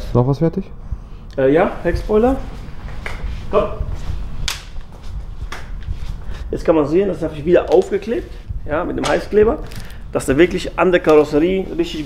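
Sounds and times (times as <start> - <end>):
sharp snap: 3.0 - 3.3, 4.4 - 4.9, 9.0 - 9.3.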